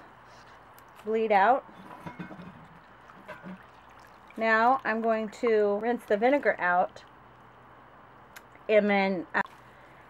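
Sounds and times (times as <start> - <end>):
water dribbling into glass bowl: 2.0 - 7.2.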